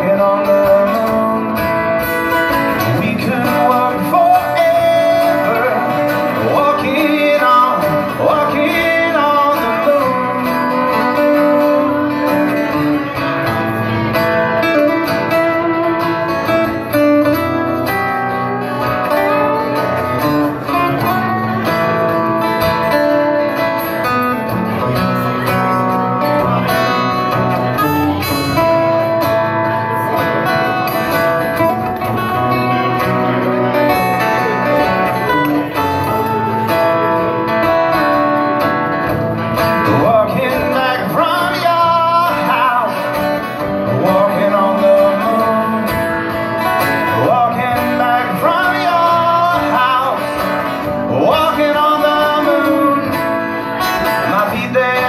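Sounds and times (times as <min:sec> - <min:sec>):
acoustic guitars playing: 0:00.0 - 0:55.0.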